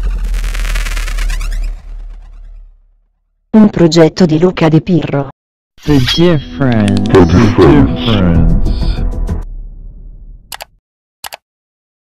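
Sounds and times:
low rumble: 0.0 - 3.0
mouse click sound effect: 10.5 - 11.4.

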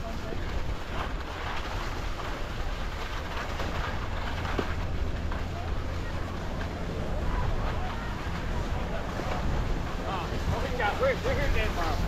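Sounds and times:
ski edges scraping on hard snow: 0.0 - 5.5
wind rumbling on microphone: 0.0 - 12.0.

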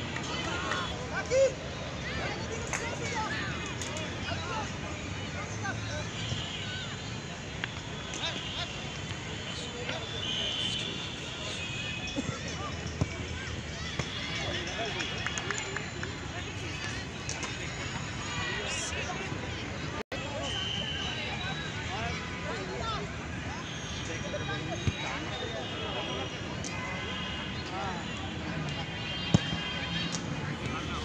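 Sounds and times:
distant voices and chatter: 0.0 - 31.0
people talking outdoors: 0.0 - 31.0.

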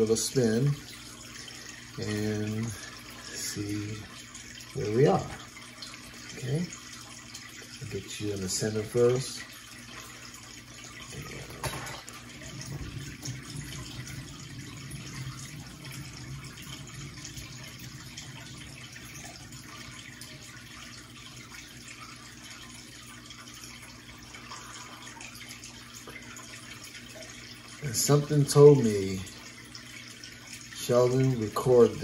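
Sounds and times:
water trickling: 0.0 - 32.0.

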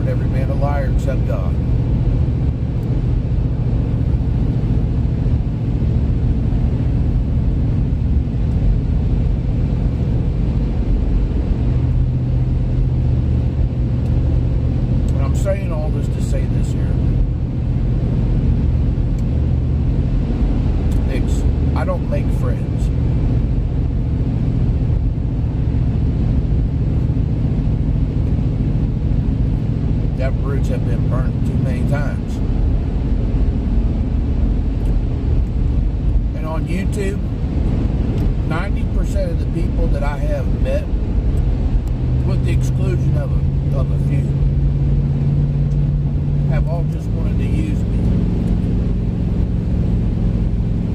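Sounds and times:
road noise: 0.0 - 50.9
vehicle engine rumble: 0.0 - 50.9.

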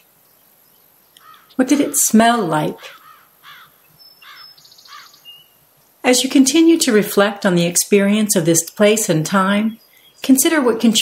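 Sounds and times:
bird calls: 0.0 - 5.6
high bird trill: 1.2 - 5.6.

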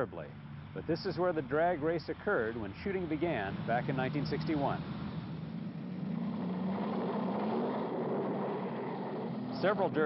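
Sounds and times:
racing car engines droning: 0.0 - 10.0.

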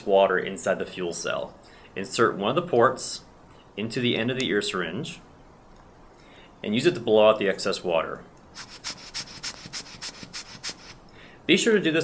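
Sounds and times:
rubber bulb hissing air puffs: 8.5 - 11.2.

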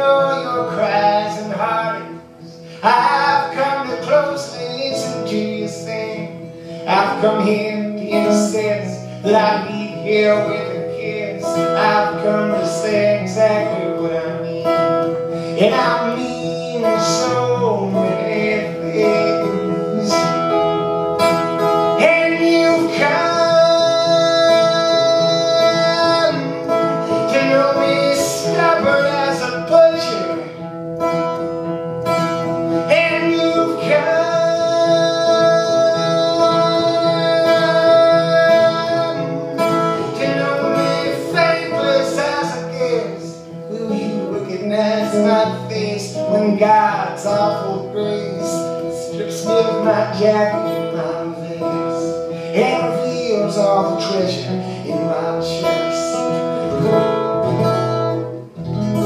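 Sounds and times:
person singing: 0.0 - 30.7, 32.4 - 57.3
acoustic guitar strumming: 0.0 - 59.0.

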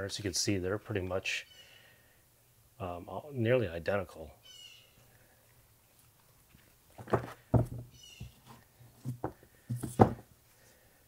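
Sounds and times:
plastic frames knocking and clattering: 7.0 - 10.3.

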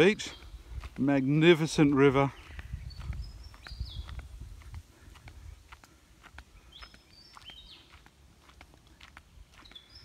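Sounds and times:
footsteps on dirt track: 0.0 - 10.0
birds whistling calls: 2.2 - 4.3, 6.4 - 8.1, 8.9 - 10.0
wind rumble: 2.3 - 6.7.

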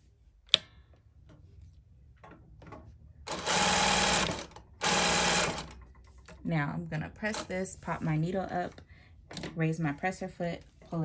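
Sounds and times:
sewing machine stitching: 3.3 - 5.8.

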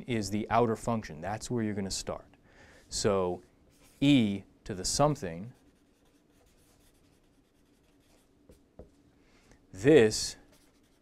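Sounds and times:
marker writing strokes: 5.6 - 8.6, 10.5 - 11.0.

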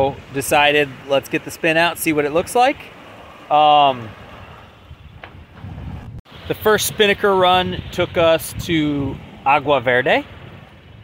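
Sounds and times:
wind on microphone: 1.8 - 11.0.

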